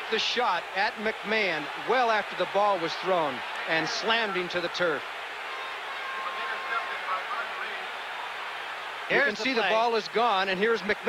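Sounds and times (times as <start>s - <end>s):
stadium crowd hubbub: 0.0s - 11.0s.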